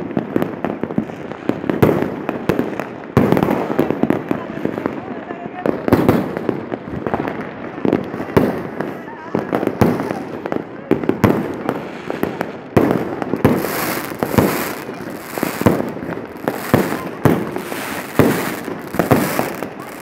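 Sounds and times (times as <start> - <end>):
fireworks and firecrackers banging: 0.0 - 20.0
hissing crackle: 13.4 - 20.0.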